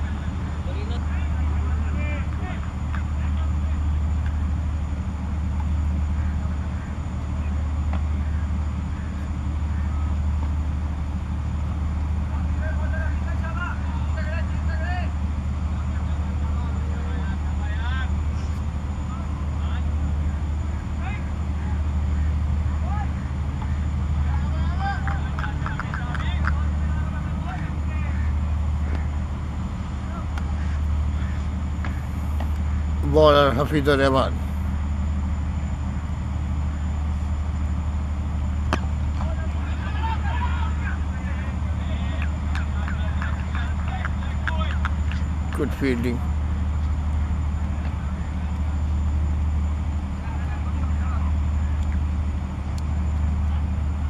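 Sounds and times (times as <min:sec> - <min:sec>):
distant players calling out: 0:00.0 - 0:54.0
steady low rumble: 0:00.0 - 0:54.0.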